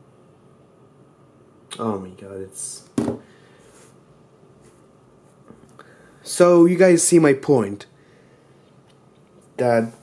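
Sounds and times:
smartphone knocking on wooden desk: 3.0s - 3.3s.

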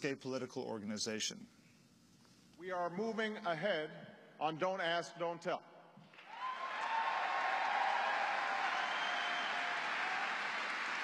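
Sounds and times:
audience applauding: 6.1s - 11.0s
crowd cheering: 6.1s - 11.0s.

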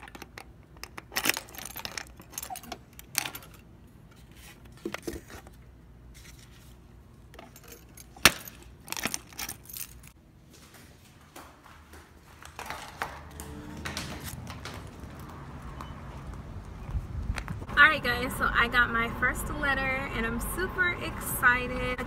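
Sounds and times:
keys jangling on a keyring: 1.1s - 3.6s, 7.4s - 10.2s.

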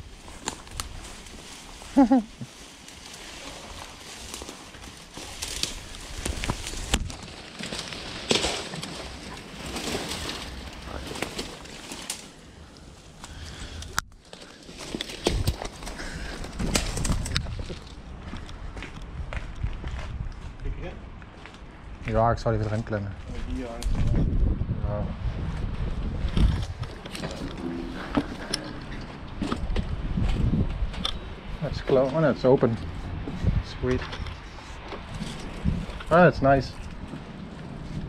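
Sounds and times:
footsteps on dry twigs: 0.0s - 24.3s, 25.4s - 38.0s
shrubs and branches rustling: 0.0s - 38.0s.

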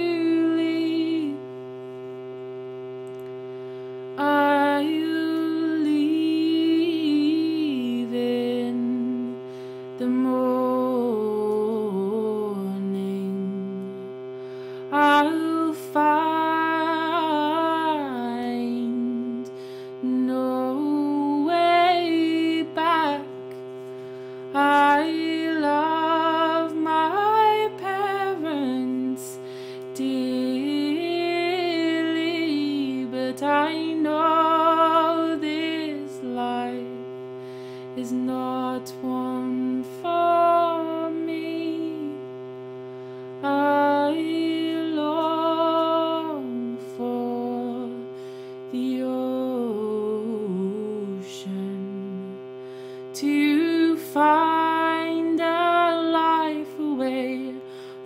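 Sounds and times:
person singing slow melody: 0.0s - 58.0s
reed drone from shruti box: 0.0s - 58.0s.

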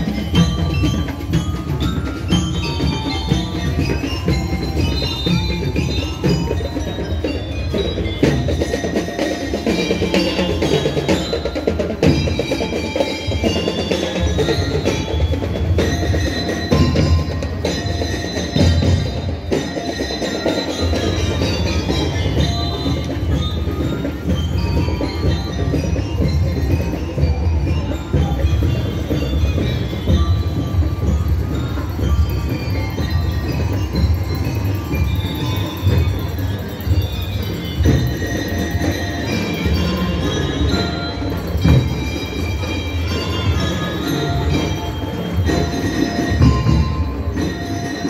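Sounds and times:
bell-like notes: 0.0s - 48.0s
marching band music: 0.0s - 48.0s.

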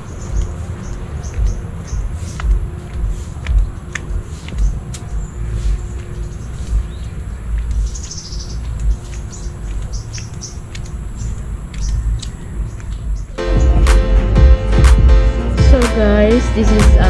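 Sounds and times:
small birds chirping: 0.0s - 13.4s
walking rumble: 0.0s - 13.4s.

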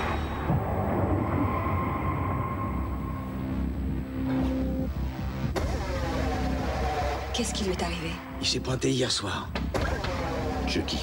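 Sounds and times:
low rumbling drone: 0.0s - 8.6s.

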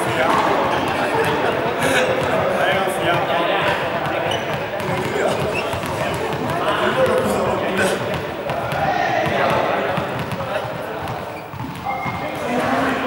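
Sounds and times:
balls bouncing on hall floor: 0.0s - 13.0s
chatter of people: 0.0s - 13.0s.

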